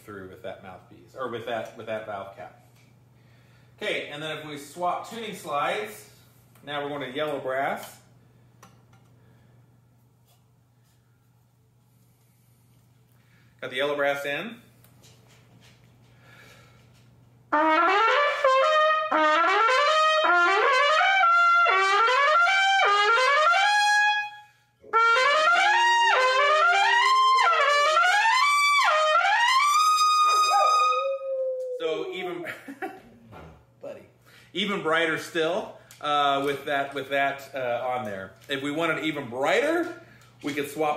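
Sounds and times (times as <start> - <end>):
trumpet playing quick runs: 17.5 - 31.0.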